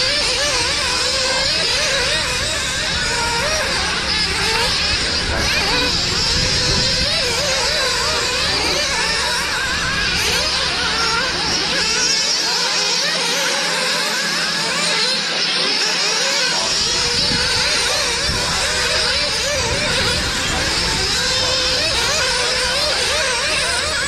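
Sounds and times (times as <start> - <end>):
small engines revving high: 0.0 - 24.0.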